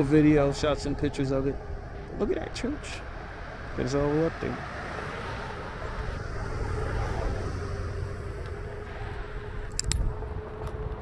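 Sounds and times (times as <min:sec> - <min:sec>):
wheel and wind rumble: 0:00.0 - 0:11.0
electric board motor whine: 0:05.0 - 0:11.0
sharp metallic clicks: 0:09.7 - 0:10.8.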